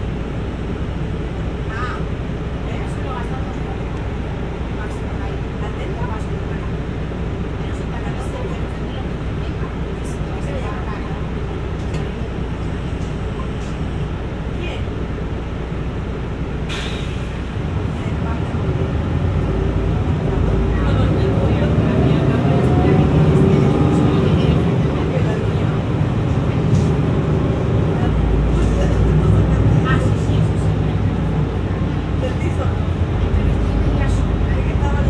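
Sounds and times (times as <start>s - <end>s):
bus engine humming: 0.0s - 35.0s
brief hiss: 16.7s - 17.4s.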